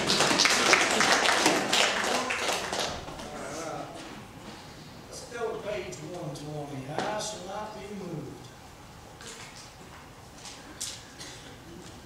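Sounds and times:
congregation clapping: 0.0s - 3.3s.

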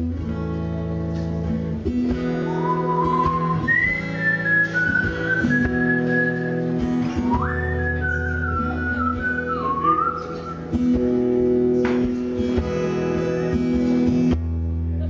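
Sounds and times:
acoustic guitar strumming chords: 0.0s - 15.0s
whistled melody: 2.5s - 10.8s.

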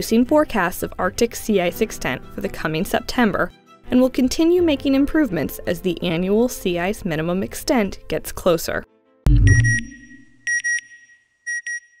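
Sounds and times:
deep boom: 9.3s - 10.0s
short high electronic beeps: 9.3s - 12.0s.

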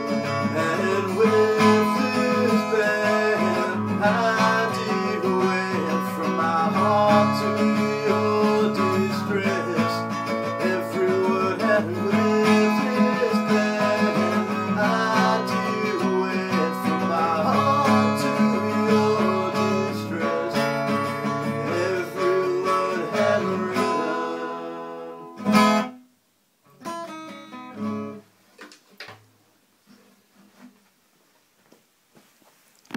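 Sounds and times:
acoustic guitar strumming chords: 0.0s - 26.1s, 26.7s - 28.2s.

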